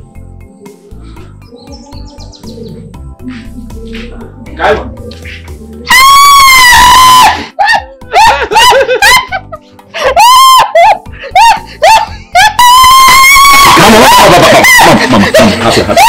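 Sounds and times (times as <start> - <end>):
women screaming: 5.9 - 9.2, 10.0 - 16.0
women cackling laughter: 7.6 - 12.9, 13.7 - 16.0.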